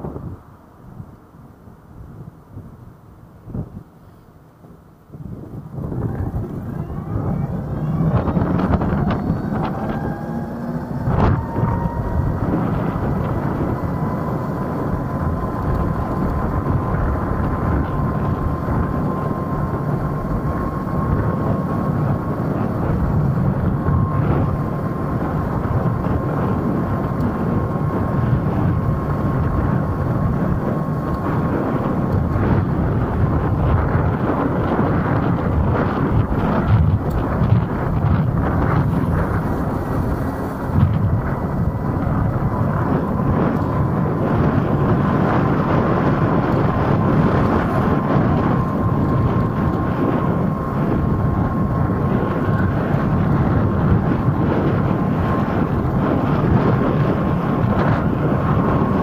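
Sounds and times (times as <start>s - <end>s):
road noise: 0.0s - 59.0s
wind rush on microphone: 0.0s - 59.0s
electric scooter motor whining: 3.2s - 59.0s.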